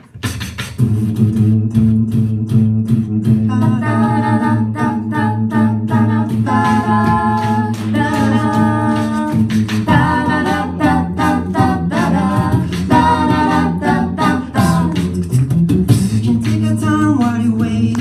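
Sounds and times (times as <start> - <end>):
beatboxing: 0.0 - 18.0
group singing chord harmonies: 2.8 - 16.6.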